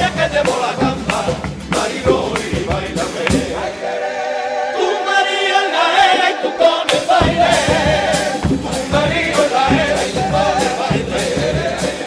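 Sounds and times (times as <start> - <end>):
sharp percussion beats: 0.0 - 3.9, 6.8 - 12.0
male chorus singing in harmony: 0.0 - 12.0.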